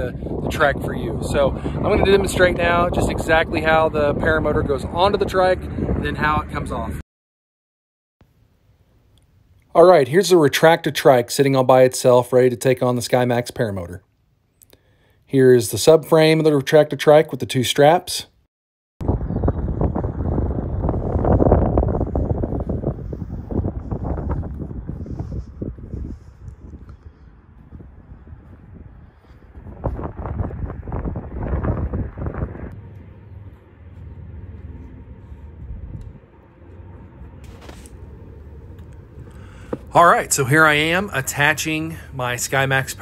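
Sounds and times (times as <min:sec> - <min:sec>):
wind buffeting microphone: 0:00.0 - 0:07.0, 0:19.0 - 0:43.0.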